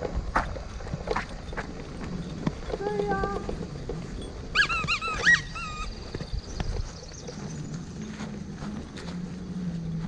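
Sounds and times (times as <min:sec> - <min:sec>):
high-pitched animal calls: 0:04.5 - 0:06.2.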